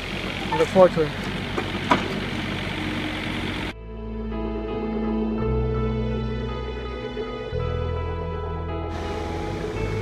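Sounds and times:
diesel engine running: 0.0 - 3.8, 8.8 - 10.0
slow ambient music: 3.7 - 10.0.

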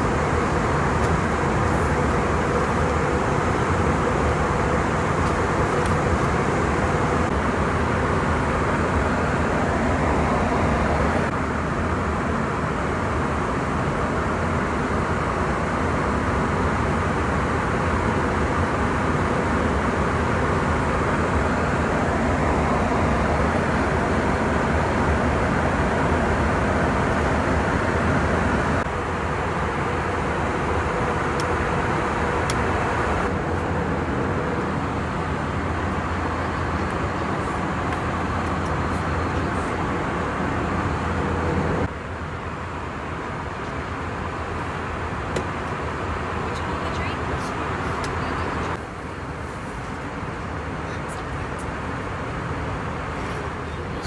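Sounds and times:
airliner cabin roar: 0.0 - 54.0.

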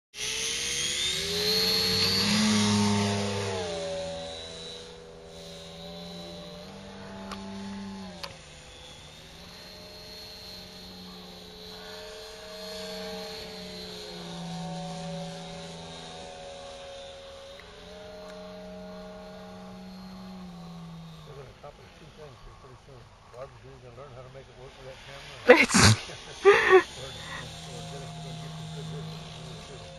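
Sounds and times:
model airplane engine: 0.2 - 29.9.

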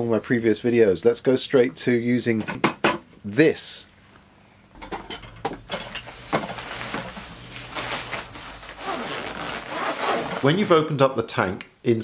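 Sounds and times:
nylon bag rustling and crinkling: 6.1 - 10.8.

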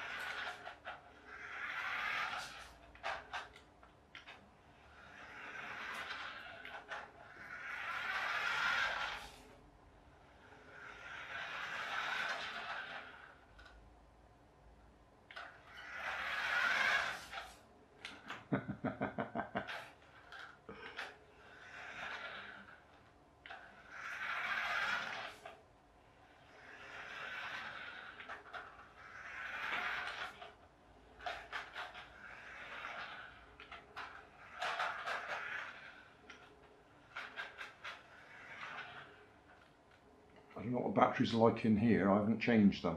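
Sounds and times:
toy car motor whirring: 0.0 - 13.8, 15.3 - 40.8
tyres on wooden floor: 0.0 - 40.9.

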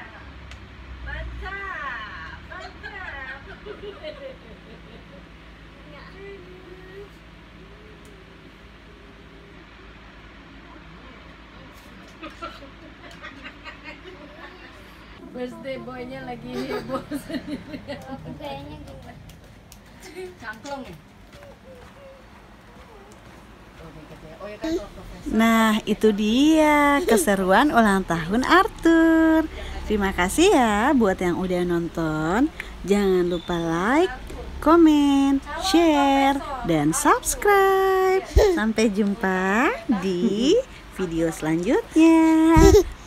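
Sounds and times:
people's voices in a room: 1.0 - 43.0
woman speaking: 14.3 - 17.2, 23.8 - 43.0.

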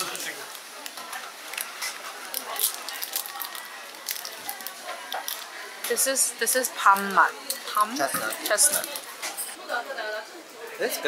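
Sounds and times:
plastic wrapper crinkling: 0.0 - 5.6
background chatter: 0.0 - 11.0.

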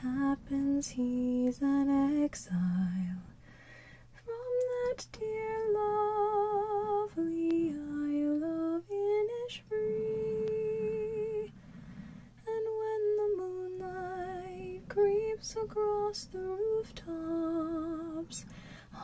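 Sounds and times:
woman singing unaccompanied: 0.0 - 3.4, 4.2 - 11.7, 12.3 - 19.0.

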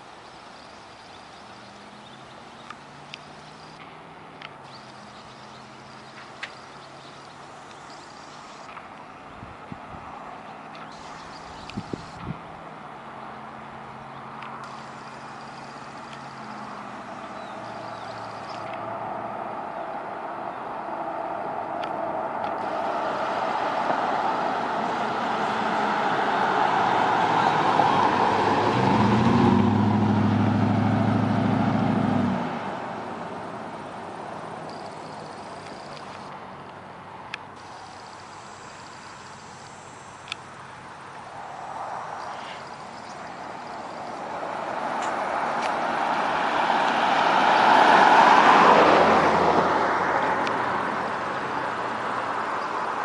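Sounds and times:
truck engine and exhaust: 0.0 - 53.0
tyre and road noise: 0.0 - 53.0
vehicle driving past: 14.2 - 36.2, 41.2 - 53.0.

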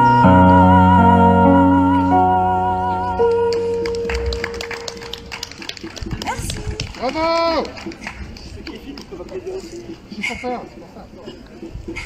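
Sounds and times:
held electric keyboard note: 0.0 - 5.9.

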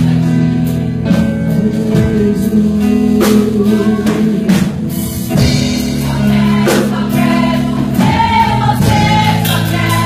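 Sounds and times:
group of voices singing: 0.0 - 10.0
worship band playing gospel song: 0.0 - 10.0.

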